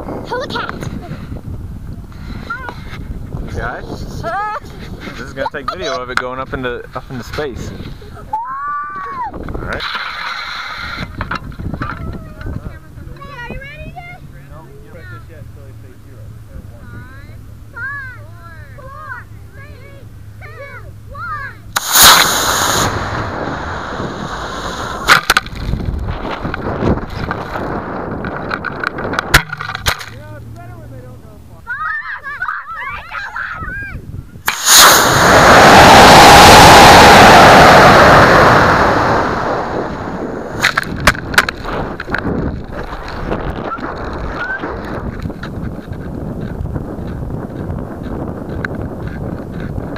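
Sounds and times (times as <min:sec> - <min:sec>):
rocket motor igniting crack: 0:09.6 - 0:11.9, 0:21.7 - 0:30.2, 0:34.4 - 0:49.9
rocket rushing roar: 0:21.7 - 0:29.8, 0:34.4 - 0:45.4
distant children calling out: 0:31.7 - 0:34.0.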